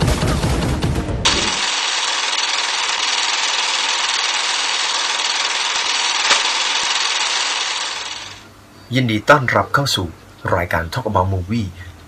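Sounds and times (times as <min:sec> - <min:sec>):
film projector clatter and hiss: 0:01.3 - 0:08.5.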